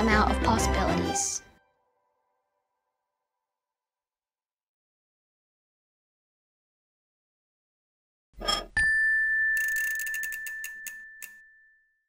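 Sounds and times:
bell-like chime tone: 0:08.5 - 0:12.0
ratchet-like clicks: 0:09.6 - 0:11.4.

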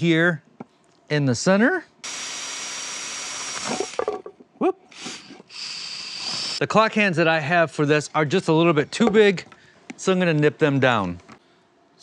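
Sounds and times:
cordless drill whining: 0:02.0 - 0:04.0, 0:04.9 - 0:06.6.

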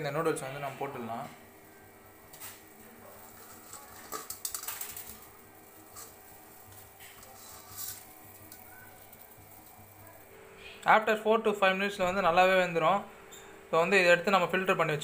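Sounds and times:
water boiling in pot: 0:01.5 - 0:10.5.

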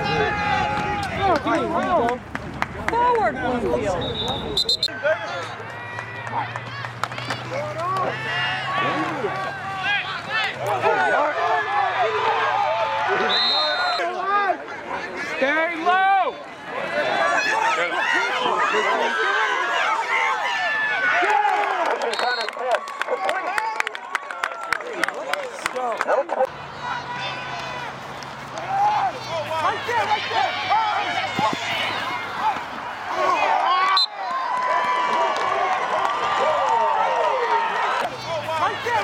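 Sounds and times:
people shouting and calling: 0:00.0 - 0:02.2, 0:02.8 - 0:23.8, 0:25.8 - 0:39.0
clapping and cheering: 0:00.0 - 0:03.4, 0:04.9 - 0:13.2, 0:20.6 - 0:39.0.

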